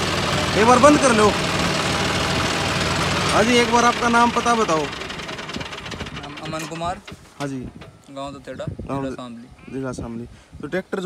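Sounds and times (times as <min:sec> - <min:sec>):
tractor diesel engine running: 0:00.0 - 0:08.4.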